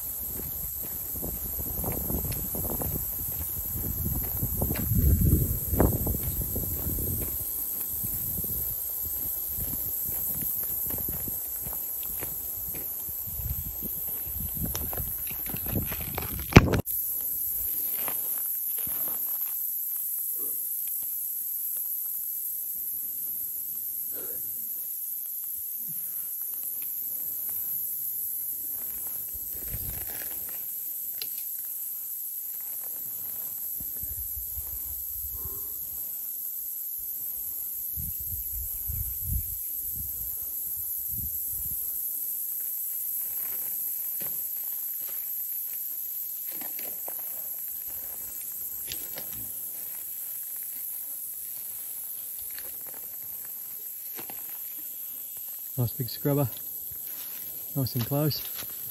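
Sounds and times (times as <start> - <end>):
footsteps crunching on stony ground: 0.0 - 16.8, 27.5 - 35.1, 42.5 - 58.9.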